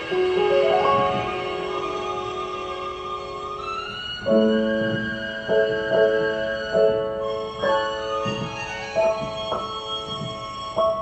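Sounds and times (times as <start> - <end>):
piano notes ringing: 0.0 - 11.0.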